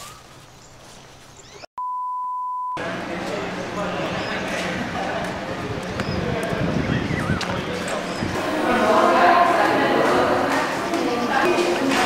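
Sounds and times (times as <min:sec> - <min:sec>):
bird chirps: 0:00.0 - 0:01.7
outdoor ambience: 0:00.0 - 0:01.7, 0:02.8 - 0:12.0
high electronic beep: 0:01.6 - 0:02.8.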